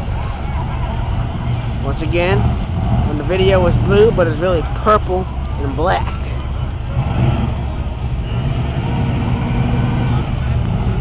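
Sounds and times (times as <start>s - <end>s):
car engine running low: 0.0s - 11.0s.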